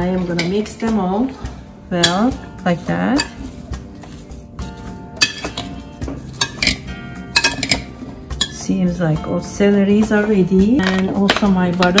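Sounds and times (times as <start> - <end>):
background music: 0.0 - 12.0
metal spoon scraping ceramic bowl: 2.0 - 8.6.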